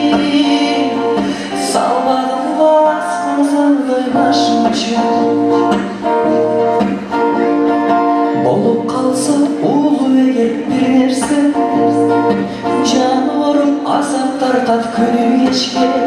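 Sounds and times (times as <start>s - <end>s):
man singing: 0.0s - 6.4s, 8.2s - 16.0s
strummed acoustic guitar: 0.0s - 16.0s.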